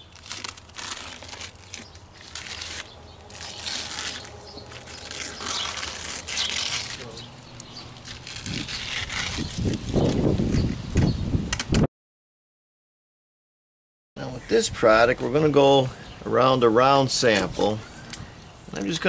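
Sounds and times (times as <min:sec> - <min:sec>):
protective sheet peeling and crinkling: 0:00.0 - 0:10.7.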